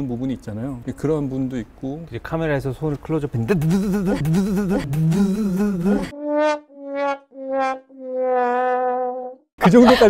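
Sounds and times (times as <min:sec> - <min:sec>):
comic sad trombone effect: 0:04.3 - 0:09.4.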